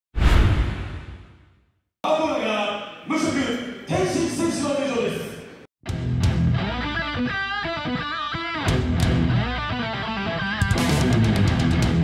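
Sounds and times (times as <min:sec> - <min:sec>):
deep whoosh sound effect: 0:00.2 - 0:01.4.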